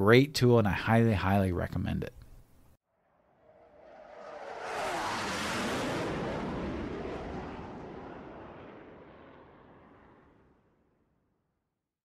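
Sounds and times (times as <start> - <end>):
airplane flyby whoosh: 3.0 - 10.7.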